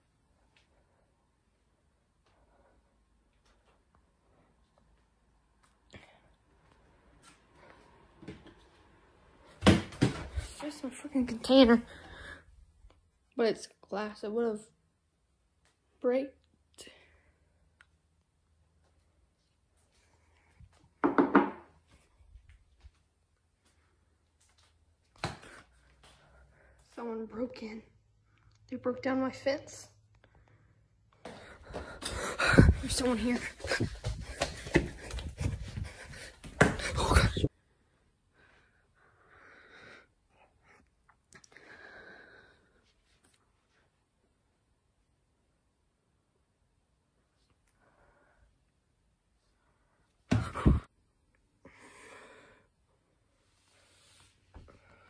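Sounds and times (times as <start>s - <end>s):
object falling with loud thump: 9.6s - 10.4s
heavy breathing: 11.8s - 12.6s, 30.3s - 37.5s.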